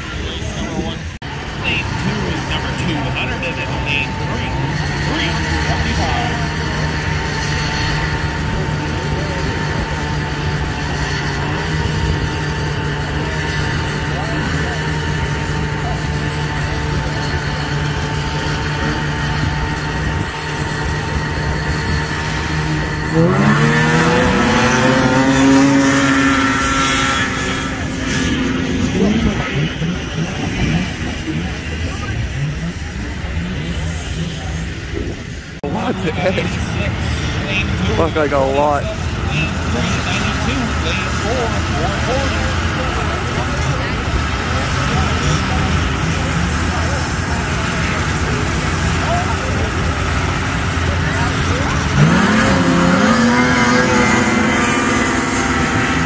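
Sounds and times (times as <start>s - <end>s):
engine revving up: 0.0s - 56.0s
snowmobile engine revving hard: 0.0s - 56.0s
snowmobile engines idling: 0.0s - 56.0s.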